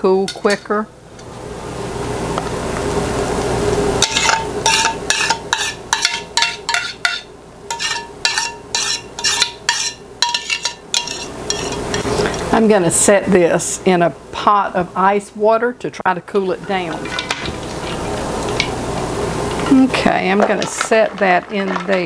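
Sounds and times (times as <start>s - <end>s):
spoon scraping metal saucepan: 4.0s - 12.4s.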